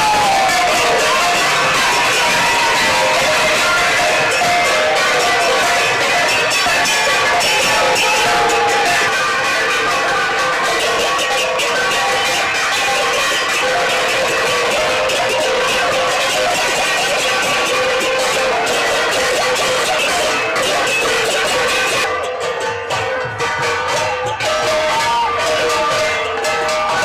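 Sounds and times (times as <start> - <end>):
metal gongs clanging: 0.0 - 27.0.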